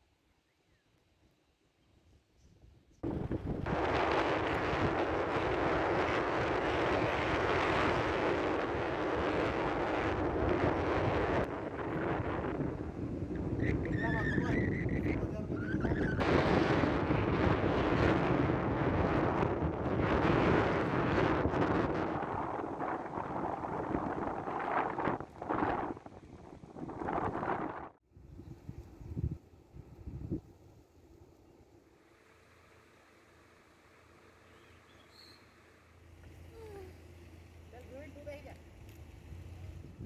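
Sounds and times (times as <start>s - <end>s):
wind buffeting microphone: 2.5s - 30.8s, 36.4s - 40.0s.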